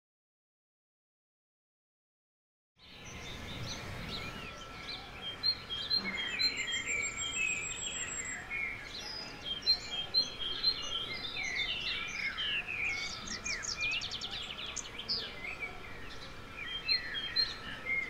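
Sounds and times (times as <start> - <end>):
faint steady tone: 2.8 - 18.0
small birds chirping: 2.8 - 18.0.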